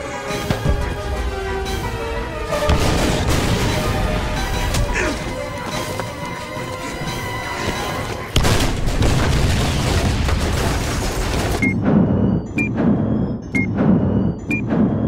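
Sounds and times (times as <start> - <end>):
dramatic orchestral score: 0.0 - 15.0
loud rumbling explosion: 8.4 - 12.3
clock ticking thud and beep: 11.6 - 15.0.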